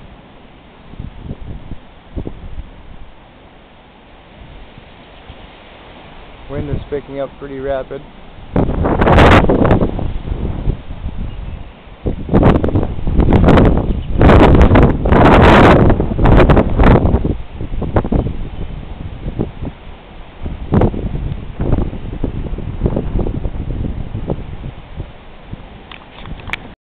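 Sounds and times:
tree leaves rustling: 0.0s - 26.7s
gusty wind buffeting microphone: 0.0s - 26.8s.

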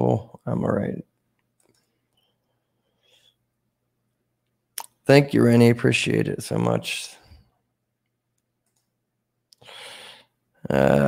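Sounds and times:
faint clicks: 1.4s - 2.6s, 8.0s - 8.9s
short breath-like hiss: 9.6s - 10.3s.

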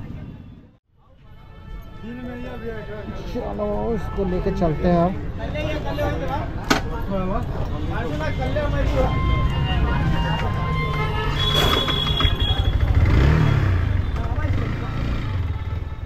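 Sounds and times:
motorcycle engine revving: 10.9s - 16.0s.

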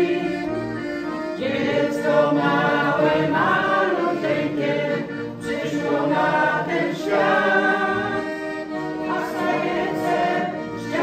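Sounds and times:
accordion: 0.0s - 11.0s
choir singing a carol: 0.0s - 11.0s.

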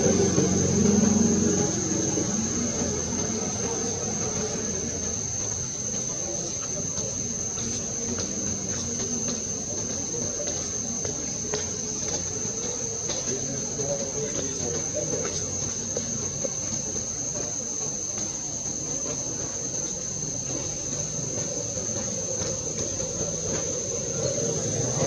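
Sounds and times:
insect chorus drone: 0.0s - 25.0s.

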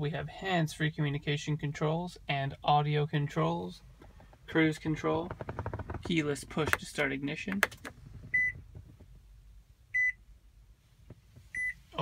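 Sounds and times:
car warning chime beeps: 8.3s - 8.6s, 9.9s - 10.2s, 11.5s - 11.8s.

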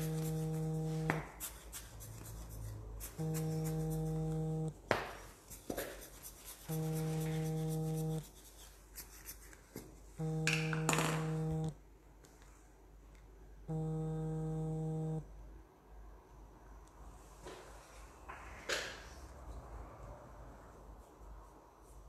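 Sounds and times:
low steady buzzing tone: 0.0s - 1.2s, 3.1s - 4.8s, 6.7s - 8.3s, 10.2s - 11.8s, 13.6s - 15.5s.

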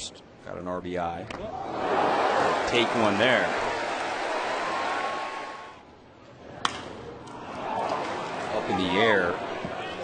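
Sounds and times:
stadium crowd noise: 1.3s - 10.0s.

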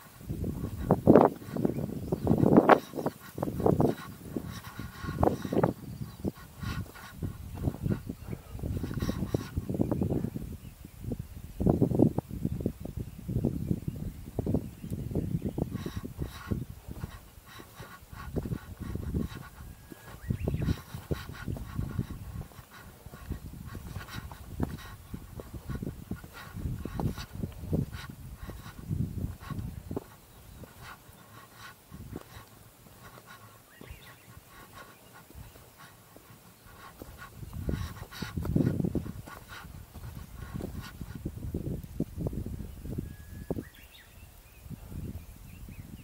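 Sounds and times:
wind buffeting microphone: 0.0s - 46.0s
person panting: 0.4s - 10.4s, 15.6s - 41.3s.

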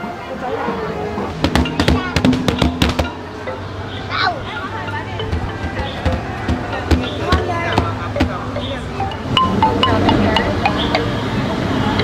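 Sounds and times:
child slapping hand drums: 1.3s - 3.3s, 5.2s - 11.1s.

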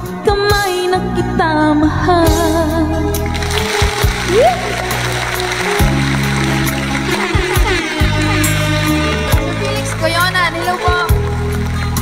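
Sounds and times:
instrumental ballad backing music: 0.0s - 12.0s.

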